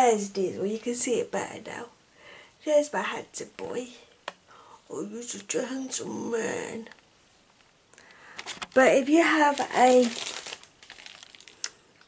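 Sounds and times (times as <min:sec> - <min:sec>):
plastic wrapper crinkling: 0:08.3 - 0:12.0.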